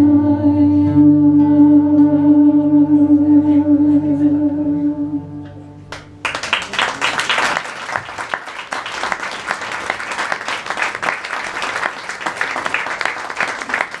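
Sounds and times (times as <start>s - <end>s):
audience applause: 5.9s - 14.0s.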